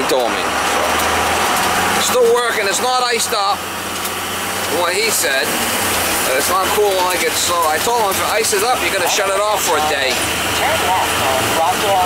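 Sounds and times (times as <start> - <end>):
road and engine noise inside vehicle: 0.0 - 12.0.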